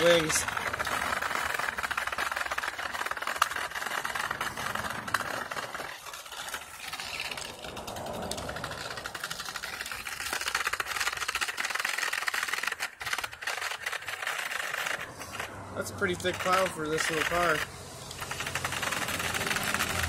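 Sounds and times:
toy car motor buzzing: 0:00.0 - 0:20.0.

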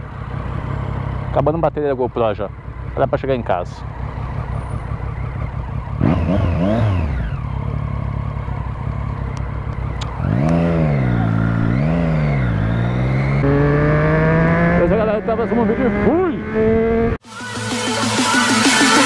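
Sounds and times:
motorcycle engine revving: 0:00.0 - 0:17.2.

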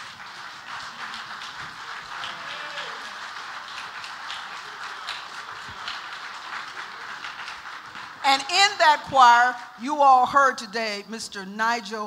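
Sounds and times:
congregation applauding: 0:00.0 - 0:09.1.

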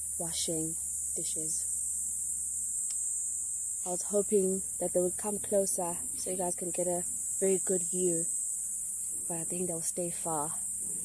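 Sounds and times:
insects chorusing: 0:00.0 - 0:11.0.

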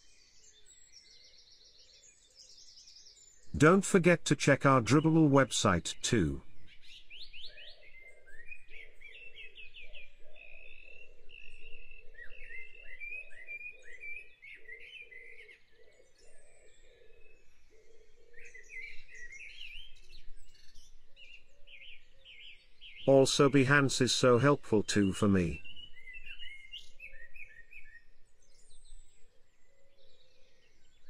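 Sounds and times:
birds singing: 0:00.0 - 0:03.5, 0:06.3 - 0:23.2, 0:24.4 - 0:31.0.

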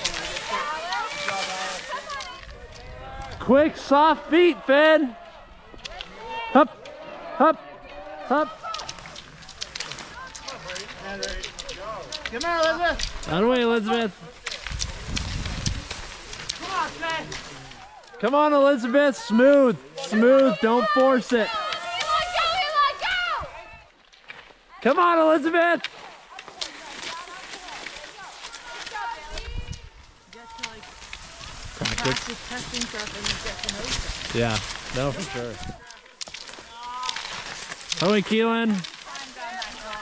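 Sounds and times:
ski poles clicking on snow: 0:00.0 - 0:05.0, 0:05.7 - 0:40.0
sharp clicks: 0:08.6 - 0:13.6.

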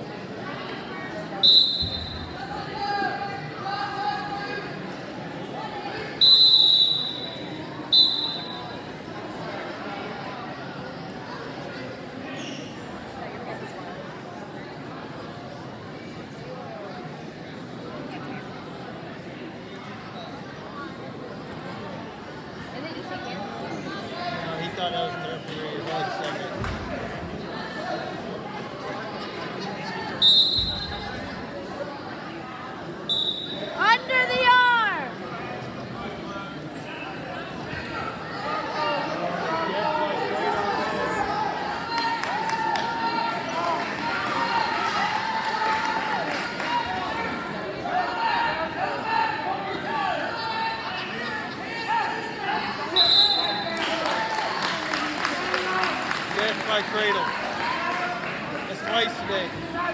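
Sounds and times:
crowd murmur: 0:00.0 - 0:59.9
spectators babbling: 0:00.0 - 0:59.9
referee's whistle blasts: 0:01.4 - 0:02.4, 0:06.2 - 0:08.8, 0:30.2 - 0:31.1, 0:33.1 - 0:33.8, 0:52.9 - 0:53.7.

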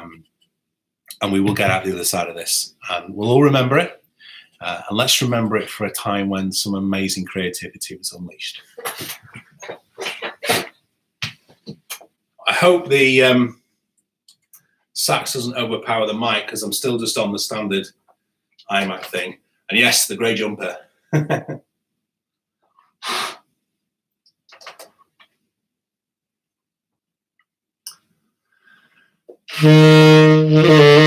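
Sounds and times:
breathy puffs: 0:08.8 - 0:10.7
burst of breath noise: 0:23.0 - 0:23.5.

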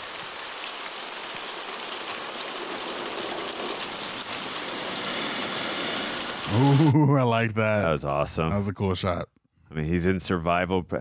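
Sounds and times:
heavy rain pattering: 0:00.0 - 0:07.2.

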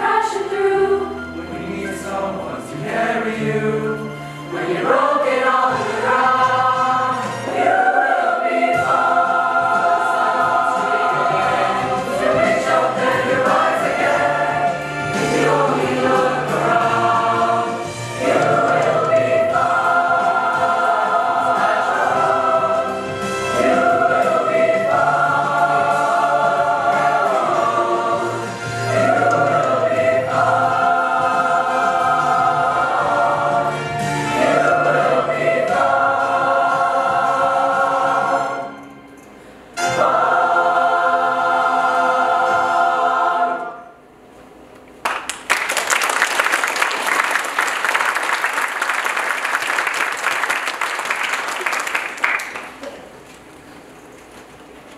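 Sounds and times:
choir singing in parts: 0:00.0 - 0:44.0.

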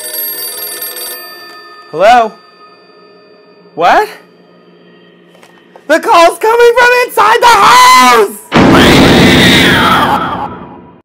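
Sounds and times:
telephone bell ringing: 0:00.0 - 0:05.7.

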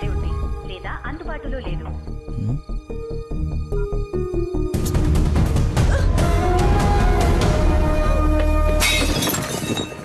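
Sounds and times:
film score music: 0:00.0 - 0:08.8
glass bowl smashing: 0:08.8 - 0:10.0.

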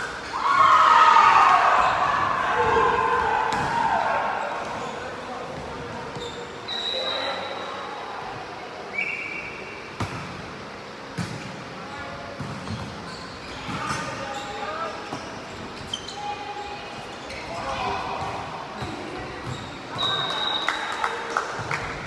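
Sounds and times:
shoe squeaks: 0:06.1 - 0:07.8, 0:12.6 - 0:17.7, 0:19.2 - 0:20.6.

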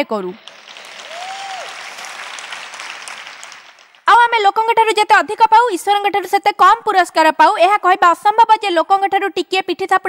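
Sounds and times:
large audience applauding: 0:00.4 - 0:04.1.

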